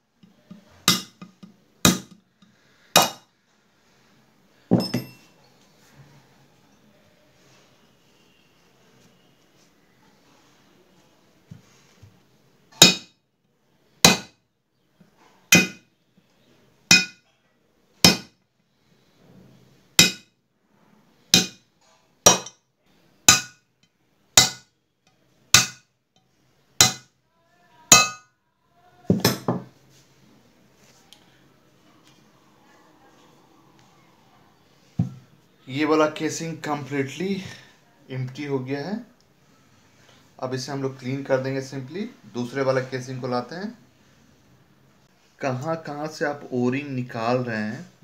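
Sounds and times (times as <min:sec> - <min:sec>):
hammer striking steel: 0:00.9 - 0:02.2, 0:03.0 - 0:03.2, 0:12.8 - 0:13.1, 0:14.1 - 0:14.3, 0:15.5 - 0:15.8, 0:16.9 - 0:17.2, 0:18.0 - 0:18.3, 0:20.0 - 0:20.2, 0:21.3 - 0:21.6, 0:22.3 - 0:22.5, 0:23.3 - 0:23.6, 0:24.4 - 0:24.6, 0:25.6 - 0:25.8, 0:26.8 - 0:27.0, 0:27.9 - 0:28.2.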